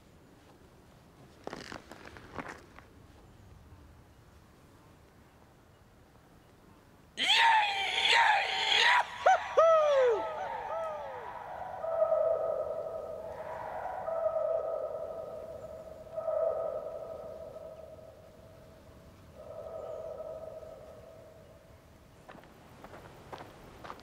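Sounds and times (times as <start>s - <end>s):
man giving long held calls: 7.2s - 18.2s.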